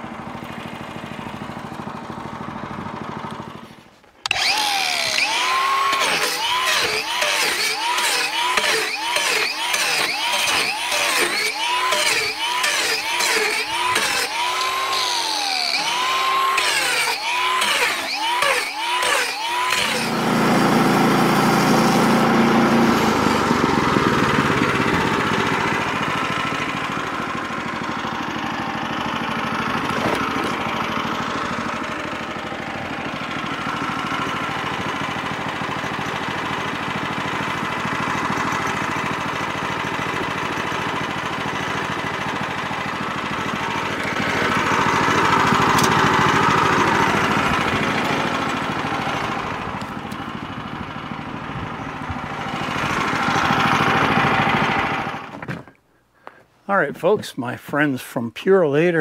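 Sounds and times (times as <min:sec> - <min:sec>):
small gasoline engine running: 0:00.0 - 0:56.4.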